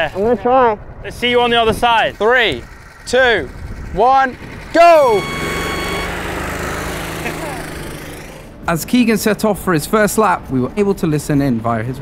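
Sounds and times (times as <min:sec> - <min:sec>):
go-kart engine droning: 0:00.8 - 0:08.7.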